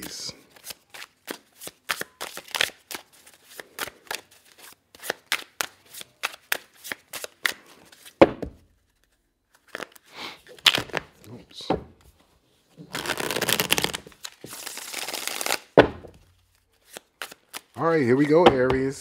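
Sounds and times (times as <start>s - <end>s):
cards being shuffled: 0.5s - 12.2s, 12.8s - 18.9s.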